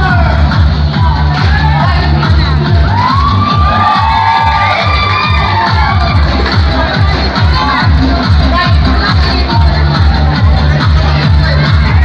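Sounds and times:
crowd cheering and shouting: 0:00.0 - 0:12.0
dance music with bass beat: 0:00.0 - 0:12.0.

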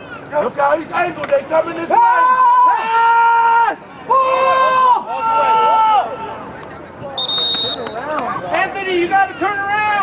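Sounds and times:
drawn-out shouts: 0:01.8 - 0:06.4
referee's whistle: 0:07.2 - 0:08.1.

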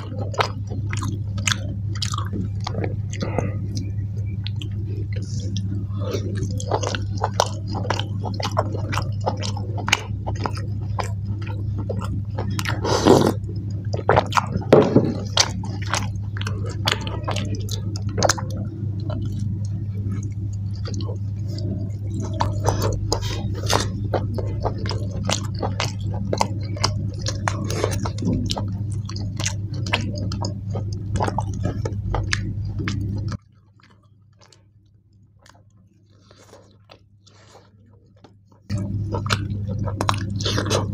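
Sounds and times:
steady low hum: 0:00.0 - 0:40.9
wet chewing smacks and clicks: 0:00.0 - 0:40.9.

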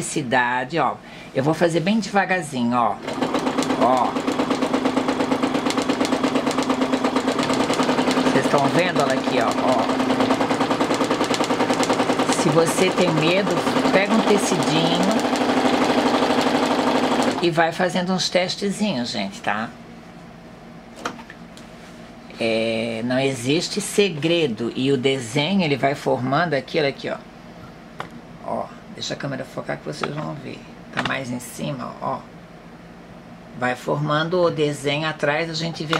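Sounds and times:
sewing machine stitching: 0:03.0 - 0:17.5.

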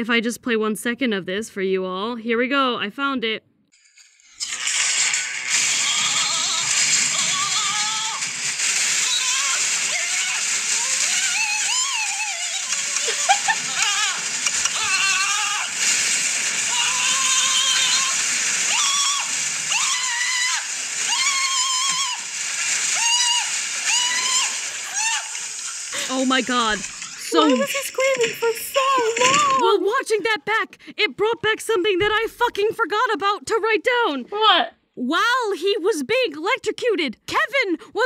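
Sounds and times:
electric crackling hiss: 0:03.8 - 0:29.6
man screaming: 0:16.7 - 0:22.3, 0:22.9 - 0:25.4.

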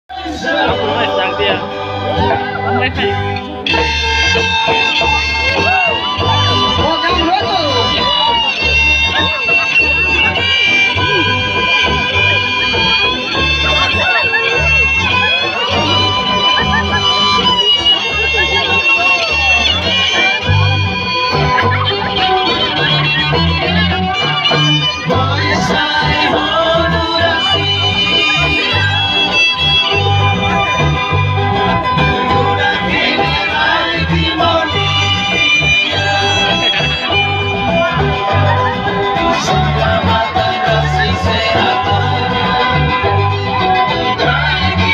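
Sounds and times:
acoustic guitars: 0:00.1 - 0:44.9
high held tone: 0:00.1 - 0:44.9
voices singing: 0:00.1 - 0:44.9
bass pulse: 0:00.2 - 0:44.9.

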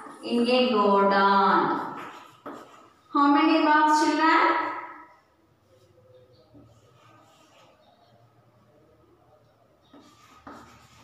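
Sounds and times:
chalk scratching on blackboard: 0:01.7 - 0:03.1, 0:06.6 - 0:07.8, 0:09.8 - 0:11.0.

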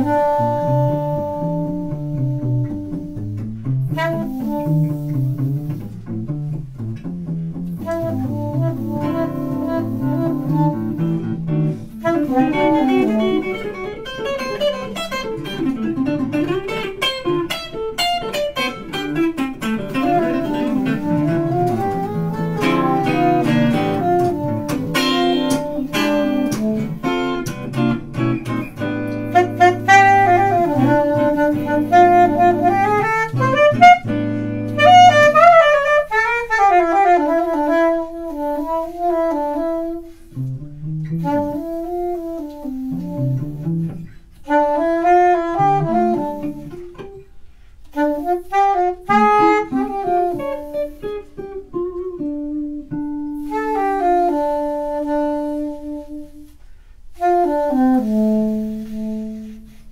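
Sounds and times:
electric guitar: 0:00.0 - 0:59.9
saxophone melody: 0:00.0 - 0:59.9.

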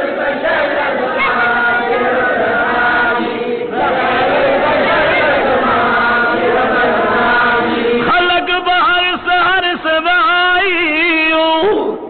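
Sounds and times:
group chanting religious chant: 0:00.0 - 0:10.0.

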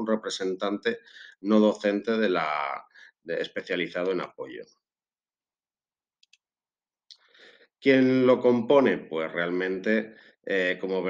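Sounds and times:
man speaking: 0:00.0 - 0:04.6, 0:07.8 - 0:11.0
faint breath: 0:01.0 - 0:01.4, 0:07.2 - 0:07.7, 0:10.1 - 0:10.4.

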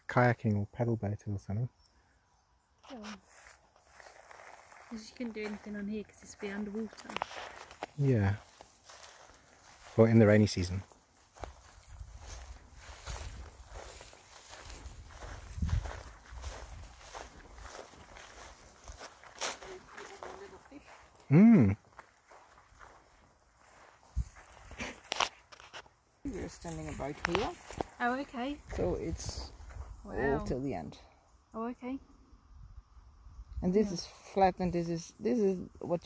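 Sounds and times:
voices: 0:02.8 - 0:03.2, 0:04.9 - 0:07.3, 0:19.5 - 0:21.8, 0:26.3 - 0:31.0, 0:31.6 - 0:32.0
footsteps on dry grass: 0:02.9 - 0:30.3.

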